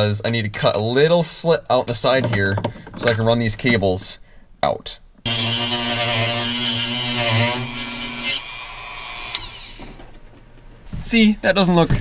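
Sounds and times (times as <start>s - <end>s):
rotary tool cutting plastic: 5.3s - 10.1s.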